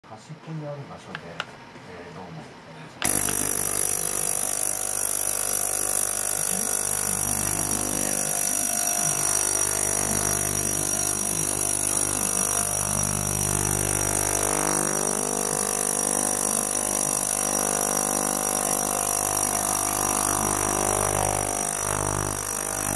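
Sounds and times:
ultrasonic cleaner buzzing drone: 3.0s - 22.9s.

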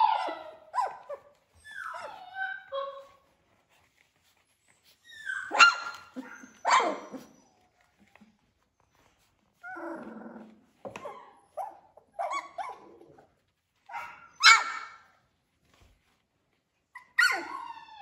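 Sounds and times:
puppy whining: 0.0s - 13.5s, 16.8s - 18.0s
puppies yipping and barking: 4.7s - 7.9s.

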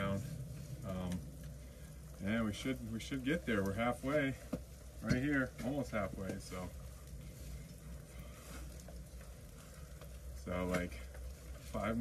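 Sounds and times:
light rain pattering: 0.0s - 12.0s
low steady rumble: 0.0s - 12.0s.

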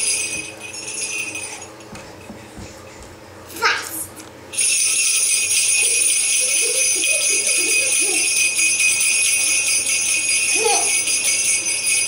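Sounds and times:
small bells jingling: 0.0s - 2.3s, 4.5s - 12.0s.

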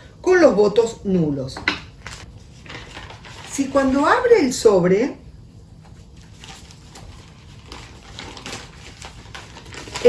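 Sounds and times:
paper rustling and crinkling: 2.0s - 4.4s, 5.8s - 10.0s.

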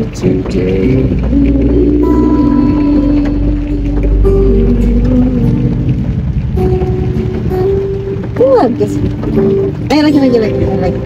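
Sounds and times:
acoustic guitar playing: 0.0s - 11.0s
rain falling on car: 0.0s - 11.0s
person singing: 0.2s - 6.2s.

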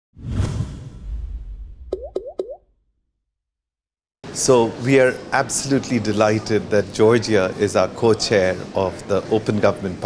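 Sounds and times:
whoosh with deep rumble: 0.2s - 2.0s.

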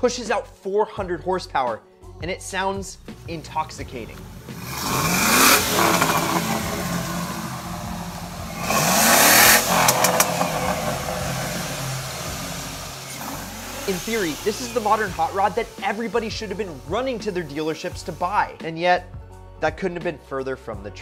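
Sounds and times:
car engine revving: 3.3s - 17.6s.

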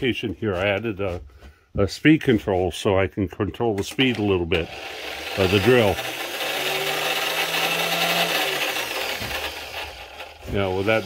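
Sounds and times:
electric drill motor running: 4.1s - 11.0s.

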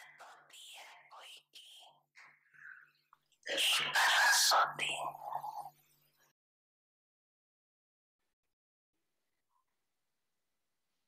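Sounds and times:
person whispering: 0.0s - 2.1s, 3.4s - 5.8s.

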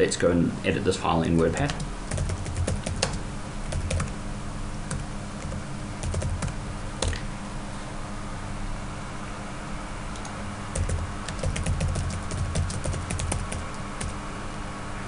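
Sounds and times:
steady low hum: 0.0s - 15.0s
typing on computer keyboard: 1.6s - 4.2s, 4.9s - 7.2s, 10.2s - 14.2s.

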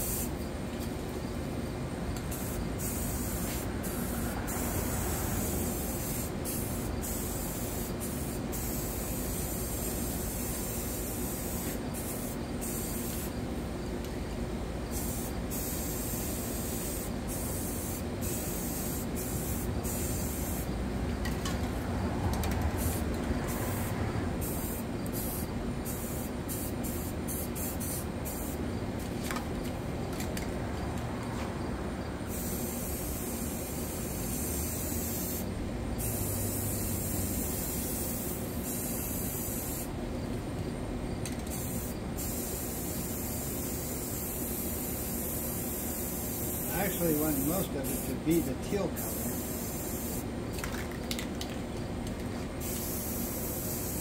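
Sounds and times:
spray paint cans hissing: 0.0s - 30.5s, 32.2s - 40.0s, 40.6s - 54.0s.

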